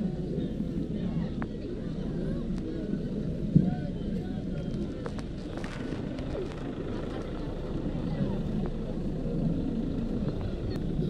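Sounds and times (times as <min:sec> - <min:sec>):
steady low rumble: 0:00.0 - 0:11.0
voices talking: 0:00.0 - 0:11.0.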